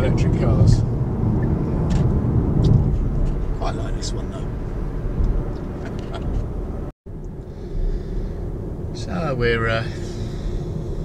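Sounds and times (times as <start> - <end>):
car cabin road and wind noise: 0.0 - 11.0.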